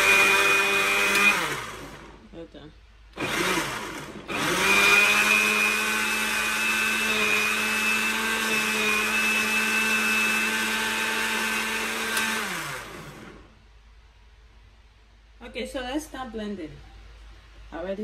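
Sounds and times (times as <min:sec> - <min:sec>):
blender motor running: 0:00.0 - 0:02.2, 0:03.2 - 0:13.6.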